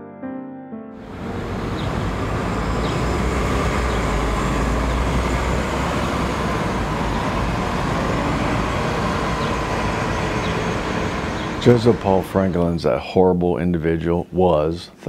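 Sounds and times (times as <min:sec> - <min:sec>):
city traffic rumble: 0:01.0 - 0:13.1.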